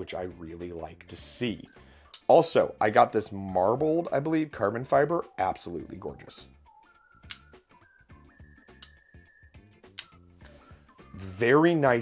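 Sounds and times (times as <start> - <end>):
quiet background music: 0.0 - 12.0
folding knife blade clicks: 7.2 - 7.5, 9.9 - 10.2.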